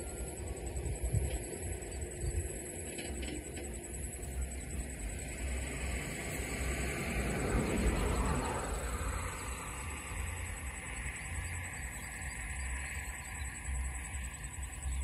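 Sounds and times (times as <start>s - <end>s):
broad rushing noise: 0.0s - 15.0s
low rumble on microphone: 0.0s - 15.0s.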